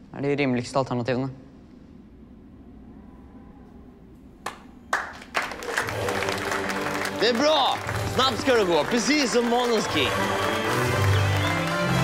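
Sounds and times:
hand claps: 4.4s - 12.0s
people applauding: 4.4s - 12.0s
music: 5.6s - 12.0s.

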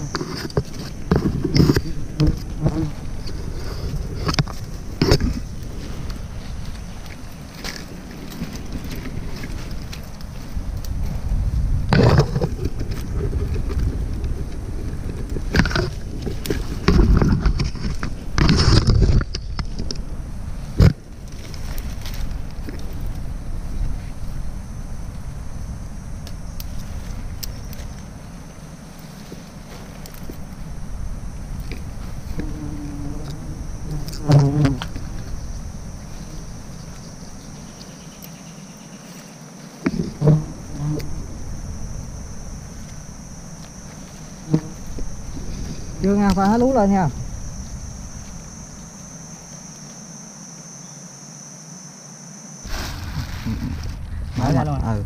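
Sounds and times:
knocks and scrapes: 0.0s - 11.2s, 11.9s - 20.0s, 52.7s - 54.6s
branches scraping against camera: 0.0s - 24.4s, 26.3s - 30.8s, 31.5s - 50.1s, 52.6s - 54.8s
wind noise on microphone: 0.0s - 37.6s, 39.8s - 48.9s, 52.6s - 55.0s.

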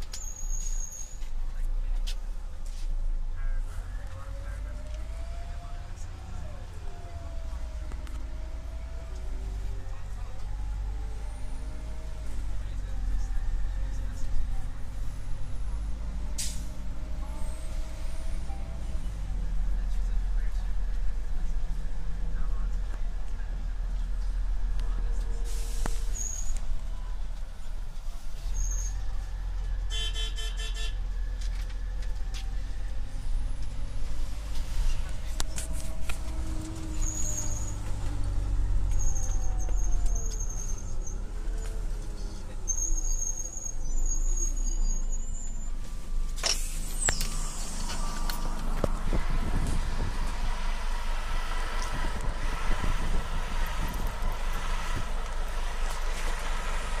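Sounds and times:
bus engine rumble: 0.0s - 57.0s.

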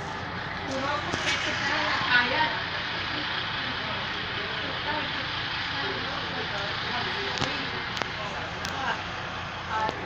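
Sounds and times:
steady background noise: 0.0s - 10.0s
indistinct voices talking: 0.2s - 10.0s.

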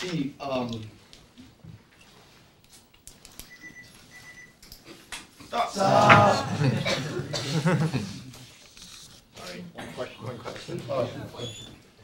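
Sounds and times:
short faint high beeps: 3.5s - 4.6s.

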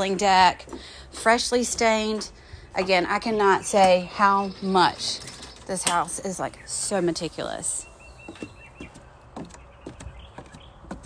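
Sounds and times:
footsteps on wooden stairs: 0.0s - 2.6s, 7.9s - 11.0s
bird chirping: 3.5s - 11.0s.

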